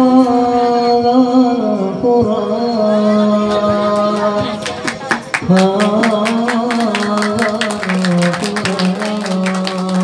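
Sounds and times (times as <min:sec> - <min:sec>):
man singing melisma: 0:00.0 - 0:04.5, 0:05.4 - 0:10.0.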